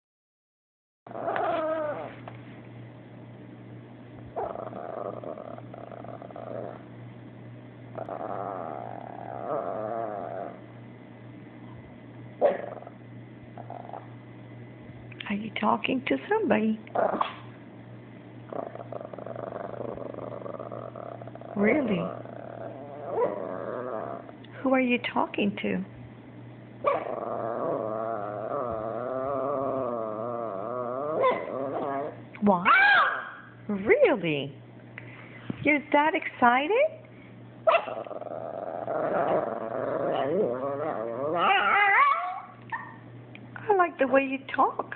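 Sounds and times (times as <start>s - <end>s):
dog whining vocalization: 1.1s - 2.2s, 4.4s - 6.8s, 16.9s - 17.5s, 18.5s - 24.3s, 26.9s - 33.4s, 37.7s - 43.1s.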